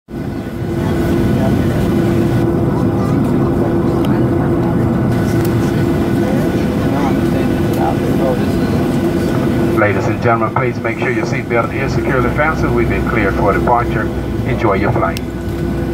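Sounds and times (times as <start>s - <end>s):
held hum: 0.1s - 15.9s
jet engine drone in cabin: 0.1s - 15.9s.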